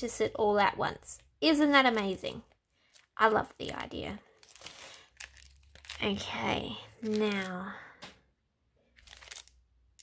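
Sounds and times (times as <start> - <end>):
plastic album pages rustling: 1.8 - 7.7, 8.9 - 10.0.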